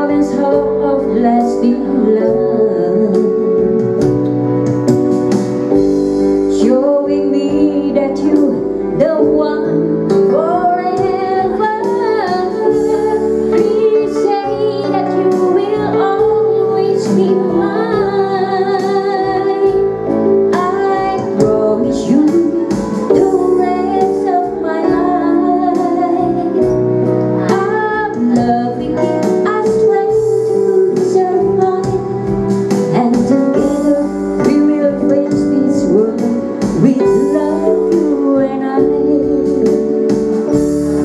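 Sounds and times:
woman singing a slow song: 0.0 - 4.2, 6.3 - 40.6
electronic keyboard chords: 0.0 - 41.0.

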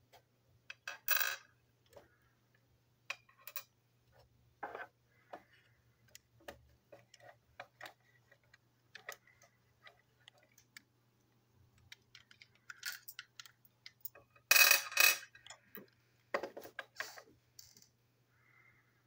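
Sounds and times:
plastic toy parts clicking: 11.8 - 15.9.

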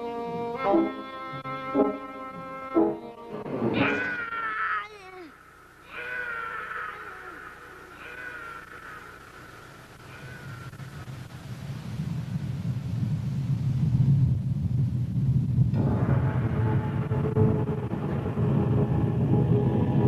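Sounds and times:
low stampede rumble: 5.8 - 20.0.

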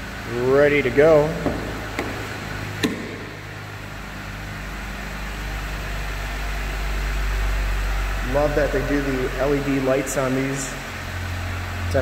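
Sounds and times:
car engine idling: 0.0 - 12.0.

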